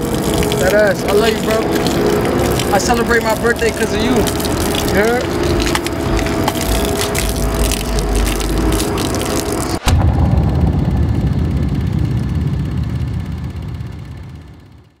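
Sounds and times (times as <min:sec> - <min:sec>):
champagne pouring and splashing: 0:00.0 - 0:09.8
bass-heavy music: 0:00.0 - 0:15.0.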